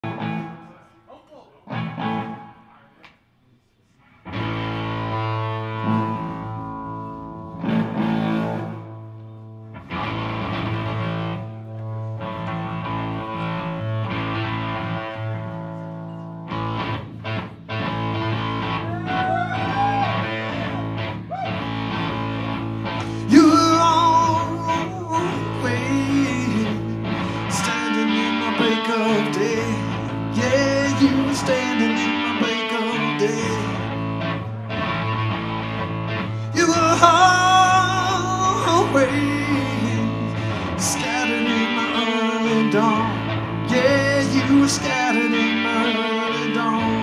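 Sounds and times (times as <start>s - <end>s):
distorted electric guitar chords: 0.0s - 0.8s, 1.7s - 2.6s, 4.2s - 47.0s
live rock band: 1.7s - 2.6s, 4.2s - 47.0s.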